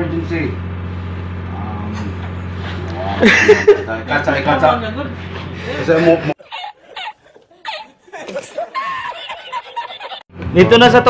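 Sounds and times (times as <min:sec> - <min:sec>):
man laughing: 0:03.0 - 0:04.0, 0:05.6 - 0:10.3.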